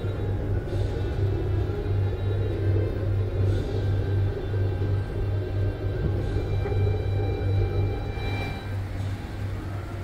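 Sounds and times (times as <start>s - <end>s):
background music: 0.0s - 10.0s
deep pulsing rumble: 0.0s - 10.0s.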